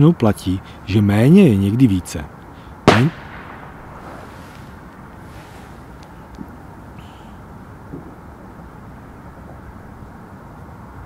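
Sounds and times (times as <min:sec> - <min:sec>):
wind on microphone: 0:02.8 - 0:11.0.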